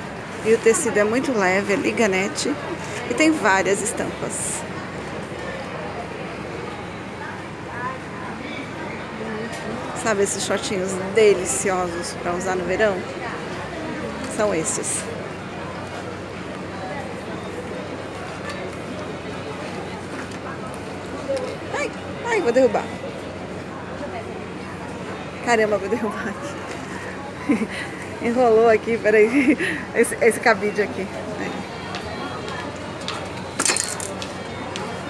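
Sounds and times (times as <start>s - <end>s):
indistinct chatter of shoppers: 0.0s - 35.0s
woman speaking: 0.4s - 4.6s, 14.3s - 15.1s, 28.2s - 31.6s
clothes hangers clicking on rack: 33.6s - 34.3s.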